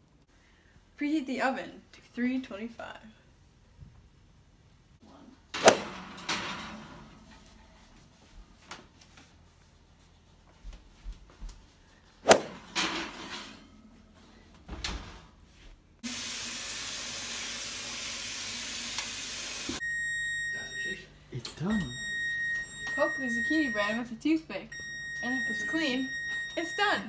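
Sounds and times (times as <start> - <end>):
oven rack knocks and clatters: 5.8 - 7.2
high electronic beep tone: 19.8 - 24.0, 24.7 - 27.0.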